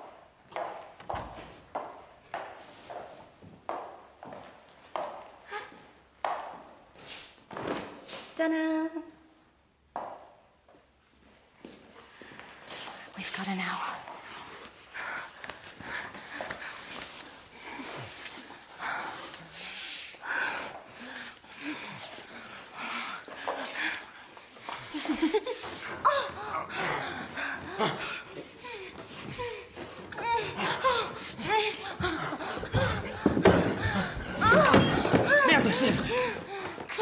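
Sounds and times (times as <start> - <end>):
heavy breathing: 14.1 - 37.0
gasps and moans: 25.5 - 37.0.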